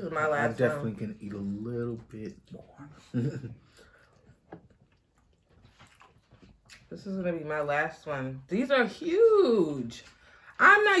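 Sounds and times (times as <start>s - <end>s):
faint wet eating sounds: 0.5s - 7.2s.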